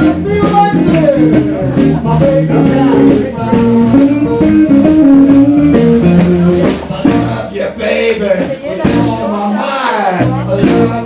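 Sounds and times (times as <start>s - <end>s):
electric guitar lead: 0.0s - 7.5s
drum beat: 0.0s - 11.0s
electric bass: 0.0s - 11.0s.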